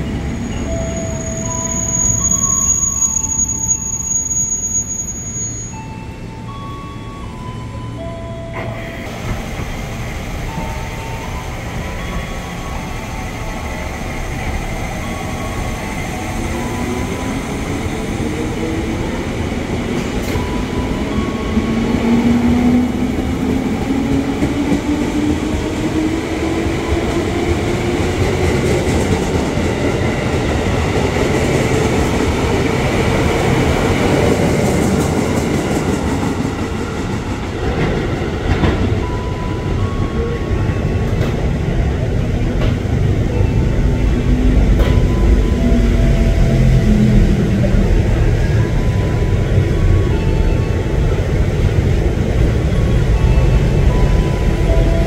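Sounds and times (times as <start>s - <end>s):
wheels rumbling on rail: 5.1s - 55.0s.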